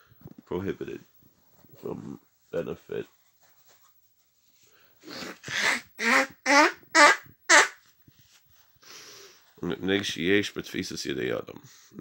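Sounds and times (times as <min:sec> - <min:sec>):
high-pitched short vocal sounds: 0:05.2 - 0:07.7.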